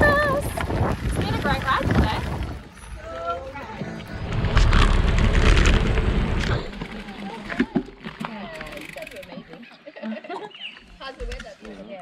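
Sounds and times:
wind buffeting microphone: 0:00.0 - 0:06.8.

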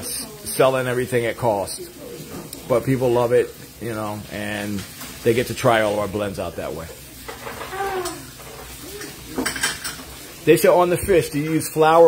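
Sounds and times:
dishes and utensils clattering: 0:06.8 - 0:10.4.

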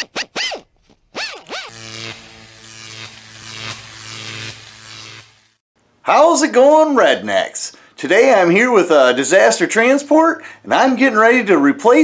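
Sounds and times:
crackling electric spark zaps: 0:01.2 - 0:05.6
steady electrical hum: 0:01.7 - 0:11.5.

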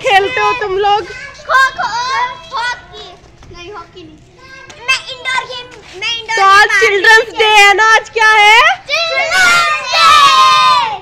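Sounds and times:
girls shouting excited cheer: 0:08.8 - 0:11.0.

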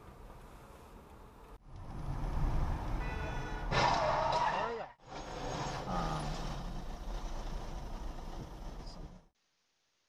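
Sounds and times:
car engine and road noise: 0:00.0 - 0:09.4.

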